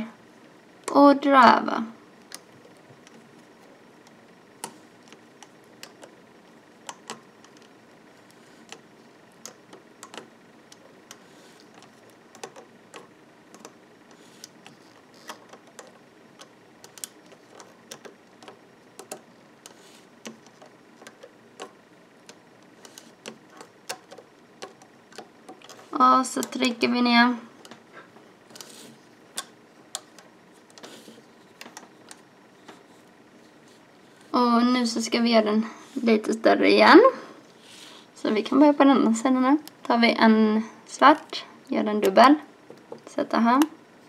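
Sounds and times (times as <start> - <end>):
loom hook clicking on plastic pegs: 8.6 - 26.8.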